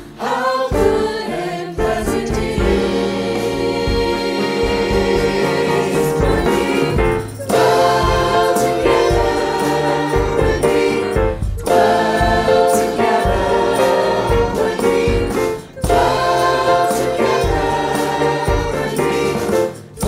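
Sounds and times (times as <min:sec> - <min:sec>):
mixed choir singing in harmony: 0:00.0 - 0:20.0.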